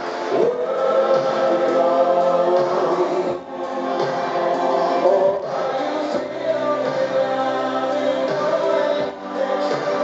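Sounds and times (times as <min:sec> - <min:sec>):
synth-pop backing music: 0:00.0 - 0:10.0
man singing into a microphone: 0:00.3 - 0:10.0.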